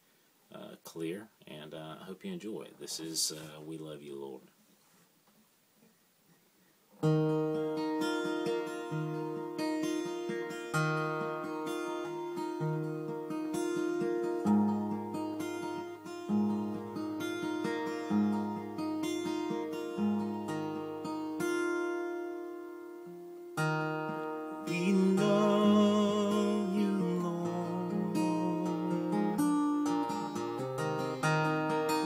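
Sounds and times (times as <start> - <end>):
acoustic guitar fingerpicked: 5.8 - 32.0.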